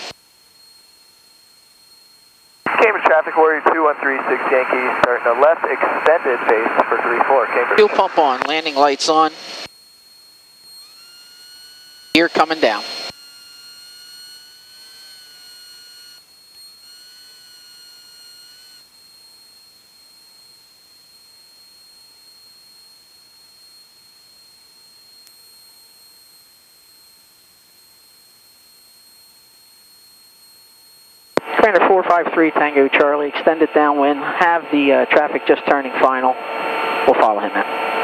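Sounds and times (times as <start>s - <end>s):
high-pitched electrical whine: 0.0s - 38.0s
faint steady high tone and hiss: 0.1s - 2.7s.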